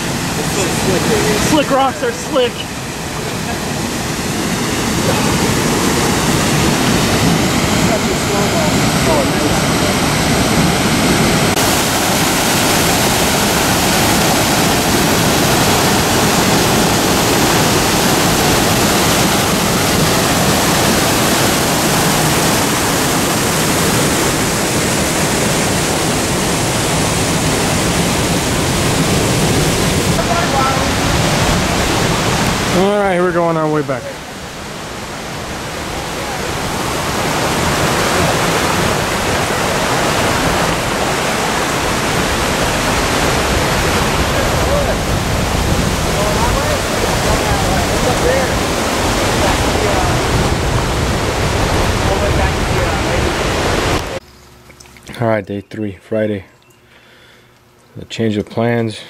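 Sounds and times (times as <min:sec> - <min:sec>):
waterfall and rapids rushing: 0:00.0 - 0:54.2.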